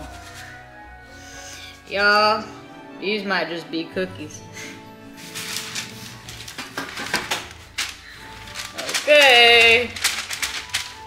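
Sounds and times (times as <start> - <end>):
parchment paper rustling: 0.0 - 2.4, 5.1 - 11.0
soft background music: 0.0 - 11.0.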